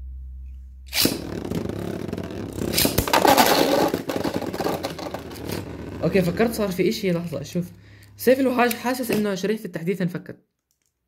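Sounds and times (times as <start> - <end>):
sharp impact cracks: 0.9 - 5.5
spinning tops whirring and clattering: 0.9 - 7.4.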